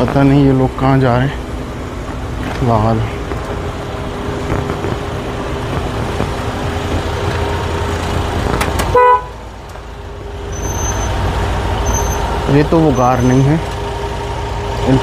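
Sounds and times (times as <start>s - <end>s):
vehicle engine hum: 0.0s - 15.0s
short car horn toot: 8.9s - 9.4s.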